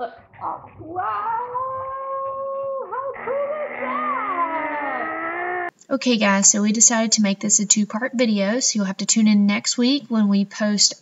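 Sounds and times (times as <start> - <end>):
people making wordless vocal sounds: 0.0 - 6.0.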